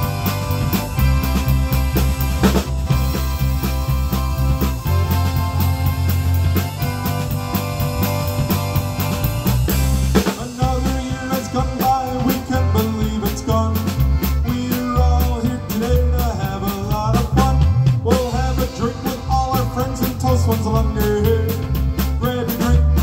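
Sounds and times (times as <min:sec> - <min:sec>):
accordion: 0:00.0 - 0:23.0
polka band playing: 0:00.0 - 0:23.0.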